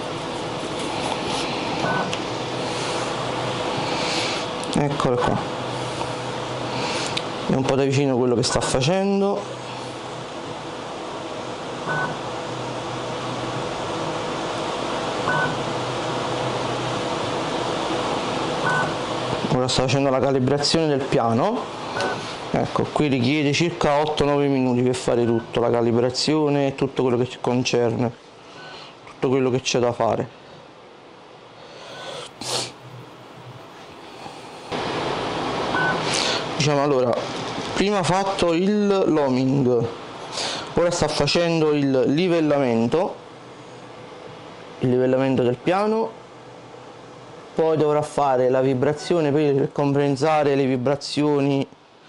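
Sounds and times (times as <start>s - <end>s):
printer fans and motors whirring: 0.0s - 52.0s.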